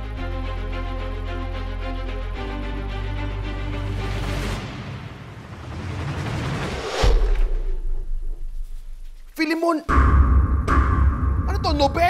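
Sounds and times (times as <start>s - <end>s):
rising noise swell: 3.8s - 9.3s.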